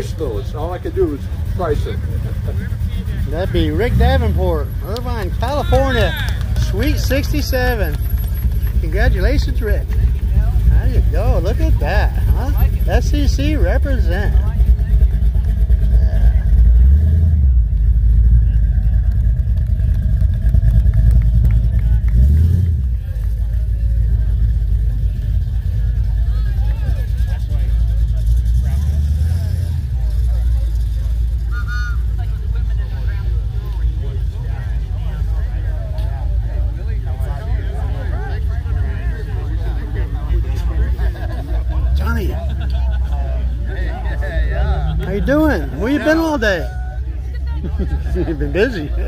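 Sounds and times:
car engine running: 0.0 - 49.0
crowd chatter: 0.0 - 49.0.

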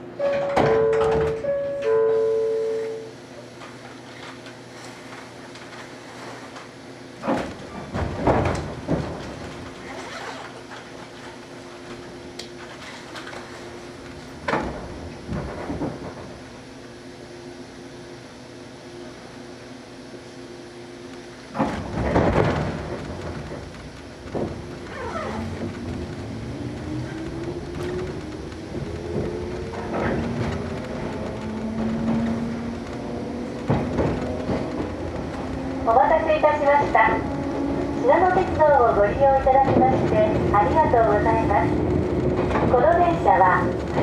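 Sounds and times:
train clunks: 0.0 - 16.7, 21.1 - 44.0
electric train rumble: 0.0 - 44.0
traction motor whine rising: 24.8 - 35.9.

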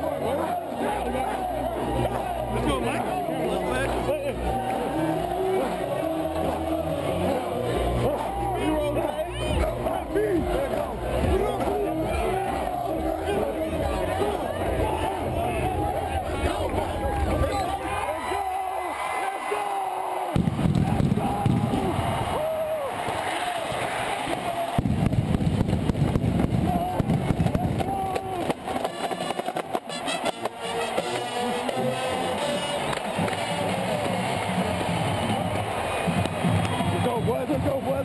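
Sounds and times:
stadium crowd noise: 0.0 - 38.0
marching band playing: 24.8 - 37.7.

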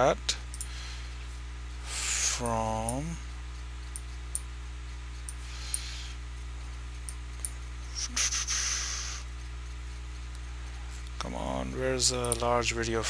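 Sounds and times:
low electrical hum: 0.0 - 13.0
short breathy hiss: 7.9 - 9.3.

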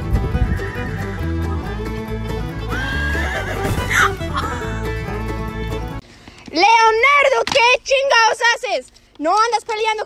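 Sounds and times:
foal whinnying: 2.7 - 4.7.

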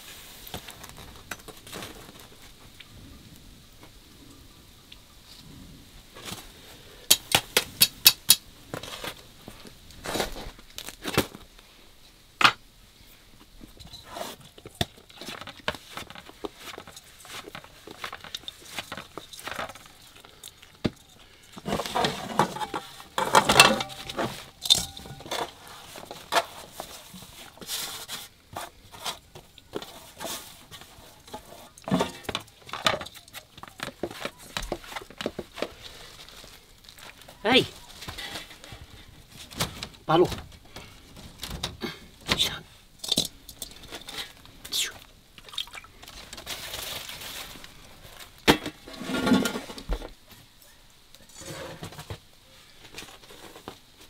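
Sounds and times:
metal bowls and tray clattering: 21.0 - 26.6, 30.0 - 33.4, 48.5 - 49.9.

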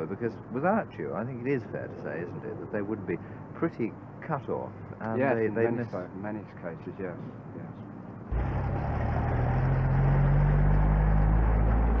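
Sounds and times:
lorry engine driving off: 8.3 - 12.0.

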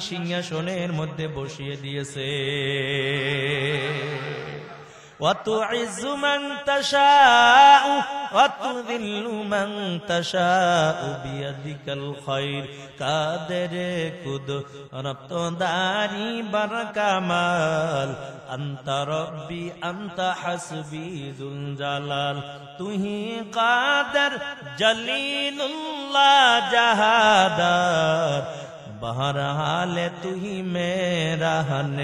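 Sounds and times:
man chanting a wavering melody: 0.0 - 32.0.

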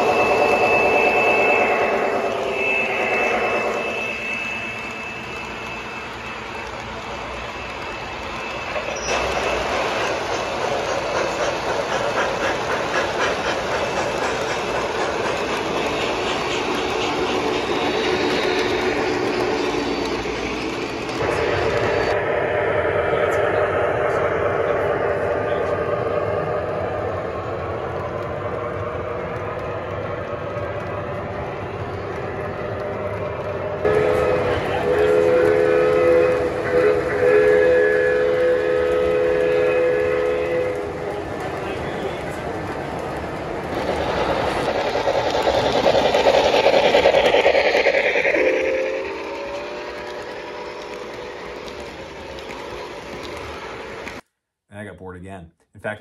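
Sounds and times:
train running sound effects: 0.0 - 54.4
model train wheels clattering: 5.4 - 21.5, 34.0 - 54.2
multi-tone train horn: 33.8 - 41.2.

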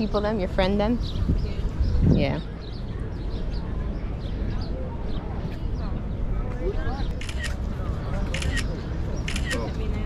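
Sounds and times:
phone camera shutter clicks: 8.3 - 8.7.

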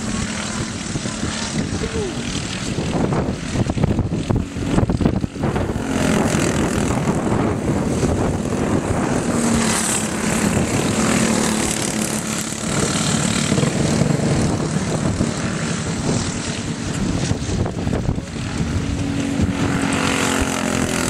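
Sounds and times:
go-kart engines droning: 0.0 - 21.0.

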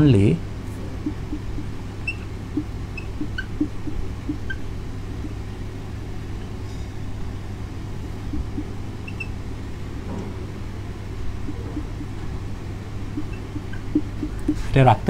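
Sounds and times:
low background hum: 0.0 - 15.0
marker writing on whiteboard: 1.0 - 4.5, 13.2 - 14.7.

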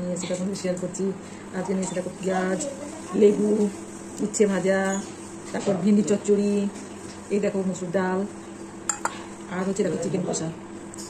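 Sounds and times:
metal bowl clinking: 8.9 - 9.2.

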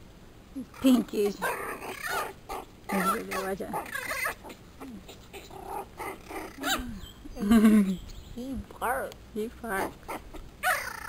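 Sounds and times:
woman's voice: 0.6 - 1.5, 2.9 - 3.9, 6.6 - 10.0
puppies vocalizing: 0.7 - 7.5, 9.8 - 11.0.

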